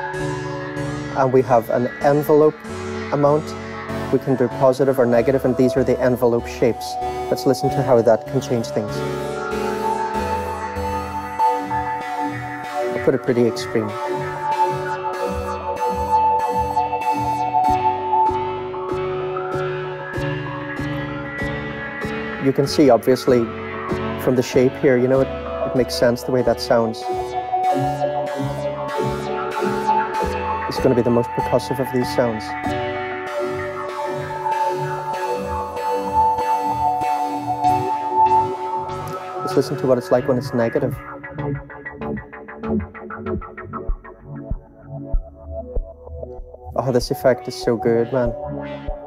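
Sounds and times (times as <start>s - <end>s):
gated synthesizer chord filter sweeps: 0.0s - 49.0s
low pulse: 0.0s - 49.0s.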